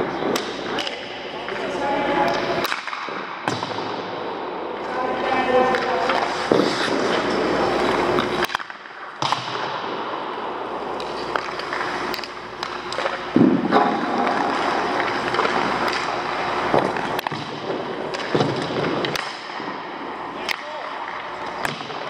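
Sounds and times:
skates scraping on ice: 4.8 - 8.7, 11.0 - 19.8.

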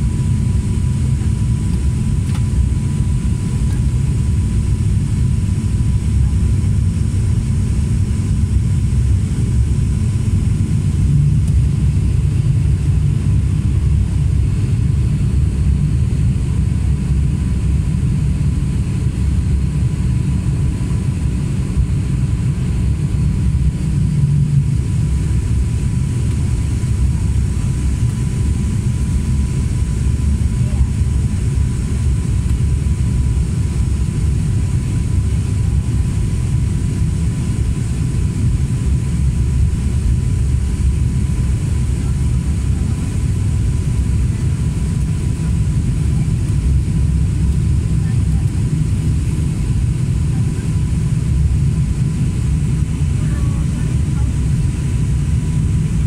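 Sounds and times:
propeller engine drone: 0.0 - 56.0.

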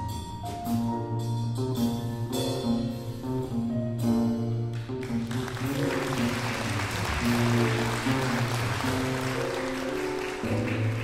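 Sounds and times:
jazz band playing slow ballad: 0.0 - 11.0
audience applauding: 4.7 - 11.0.

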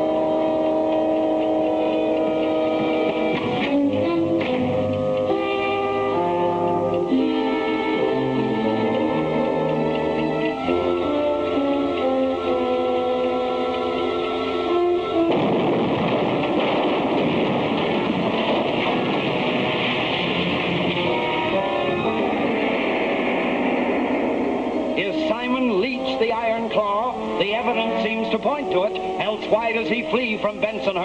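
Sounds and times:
orchestral chords: 0.0 - 31.0
explosion blast and rumble: 15.3 - 25.5.

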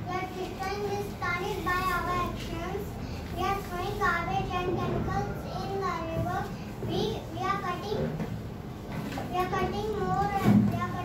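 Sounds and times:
girl speaking: 0.0 - 8.3, 9.0 - 11.0.

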